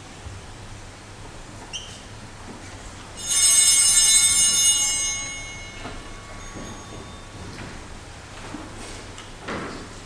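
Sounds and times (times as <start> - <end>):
altar bells ringing: 3.2 - 8.6.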